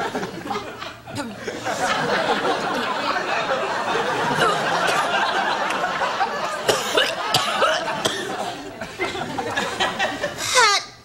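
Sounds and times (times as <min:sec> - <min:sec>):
studio audience laughing: 0:00.0 - 0:10.6.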